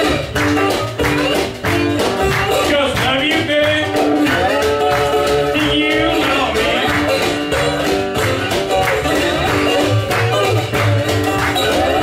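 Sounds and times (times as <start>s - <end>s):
conga played with stick: 0.0s - 12.0s
strummed guitar: 0.0s - 12.0s
upright bass: 0.0s - 12.0s
man singing: 2.5s - 7.6s.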